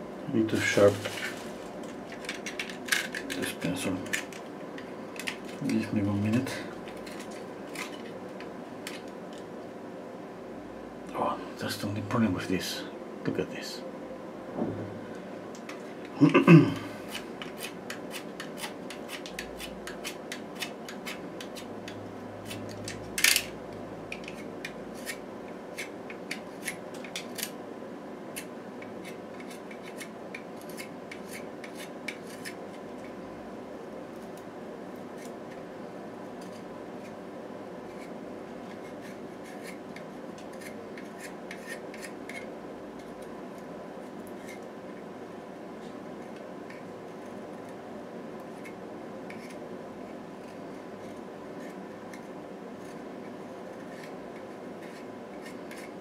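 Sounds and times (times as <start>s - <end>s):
knock: 14.6s - 15.0s.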